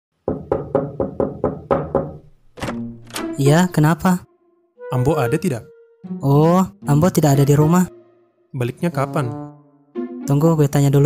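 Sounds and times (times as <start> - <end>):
knocking on a door: 0.2 - 2.3.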